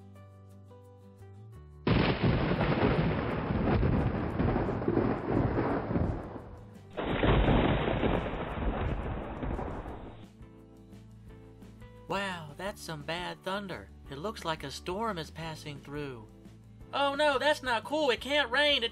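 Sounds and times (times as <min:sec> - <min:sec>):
loud thunderclaps: 0:01.9 - 0:10.2.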